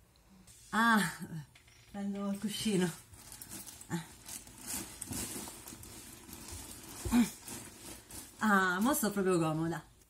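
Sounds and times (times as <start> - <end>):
fabric rustling: 2.0 - 9.7.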